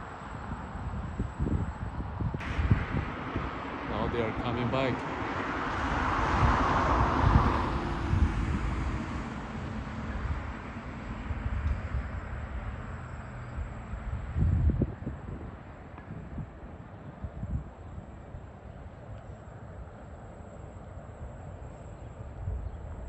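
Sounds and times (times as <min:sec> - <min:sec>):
wind rumbling on microphone: 0:00.0 - 0:23.0
road vehicle passing: 0:02.4 - 0:17.2.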